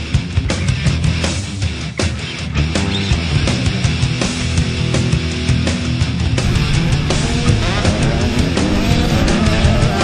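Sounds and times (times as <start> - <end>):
heavy rock music: 0.0 - 10.0
motorbike engine revving: 6.4 - 10.0.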